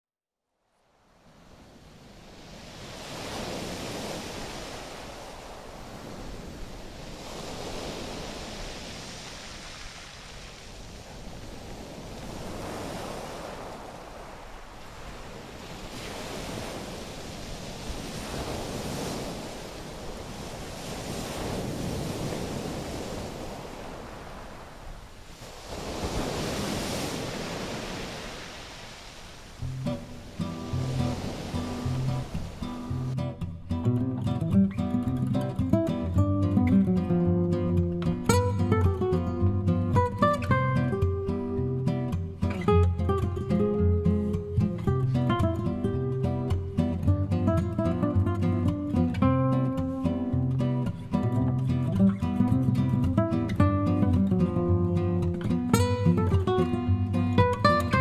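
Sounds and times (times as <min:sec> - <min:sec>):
ocean surf breaking: 0:00.8 - 0:33.8, 0:34.4 - 0:58.0
acoustic guitar music: 0:29.6 - 0:58.0.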